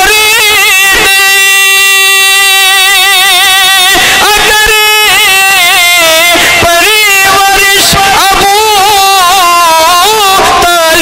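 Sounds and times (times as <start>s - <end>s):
man singing over a loudspeaker: 0.0s - 11.0s.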